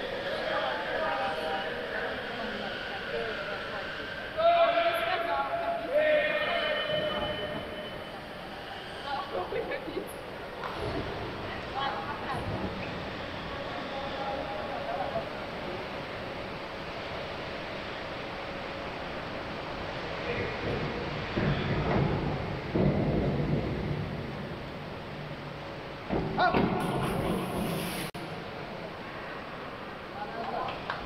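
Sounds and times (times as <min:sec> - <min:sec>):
echoing hall noise: 0:00.0 - 0:31.0.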